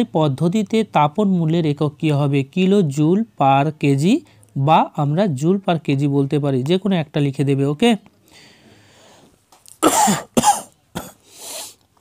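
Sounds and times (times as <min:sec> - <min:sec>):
breath: 0:08.2 - 0:09.4, 0:11.2 - 0:11.8
person coughing: 0:09.8 - 0:11.3.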